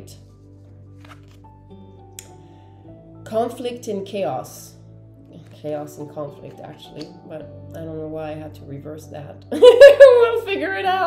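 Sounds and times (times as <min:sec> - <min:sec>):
soft background music: 0:00.0 - 0:11.0
card lifted click: 0:01.0 - 0:01.5.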